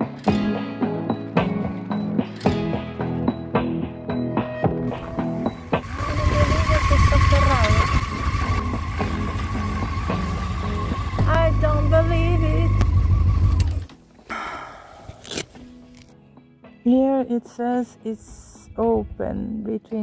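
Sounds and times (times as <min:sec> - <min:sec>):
background music: 0:00.0 - 0:20.0
motorcycle riding: 0:04.9 - 0:13.9.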